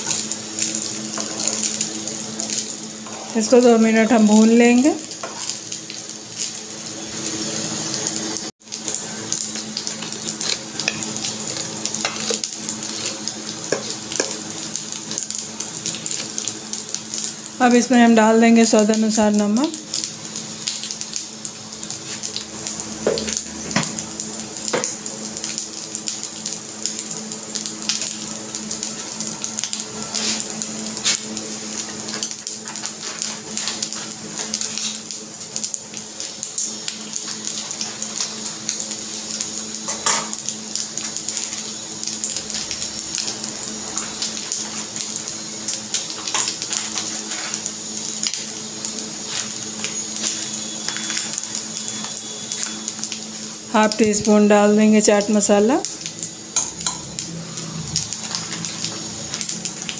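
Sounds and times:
frying hiss: 0.0 - 59.9.

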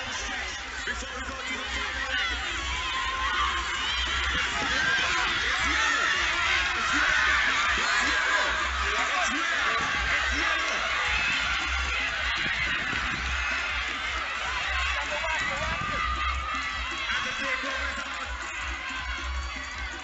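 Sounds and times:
crowd shouting and cheering: 0.0 - 20.0
music from loudspeakers: 0.0 - 20.0
pulsing bass beat: 0.0 - 20.0.

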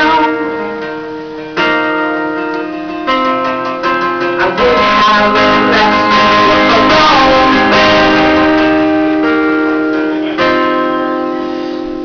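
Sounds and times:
guitar chord strummed: 0.0 - 12.0.

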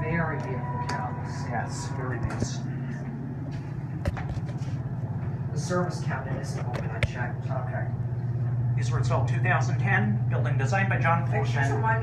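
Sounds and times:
elevator humming: 0.0 - 12.0.

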